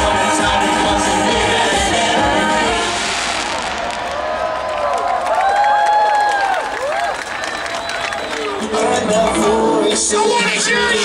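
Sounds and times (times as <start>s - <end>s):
crowd whooping: 1.9s - 9.3s
crowd clapping: 3.9s - 9.1s.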